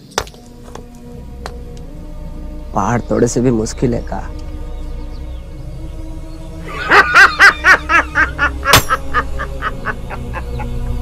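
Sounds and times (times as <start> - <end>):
low film score drone: 0.4 - 11.0
man laughing heartily: 6.6 - 11.0.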